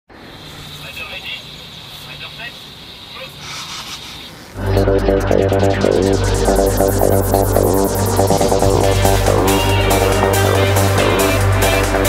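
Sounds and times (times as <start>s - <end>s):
background noise: 0.1s - 4.8s
high-pitched tone: 4.6s - 12.0s.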